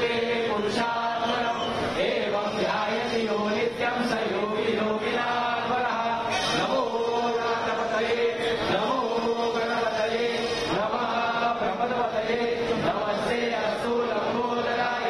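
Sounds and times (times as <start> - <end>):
group chanting in unison: 0.0 - 15.0.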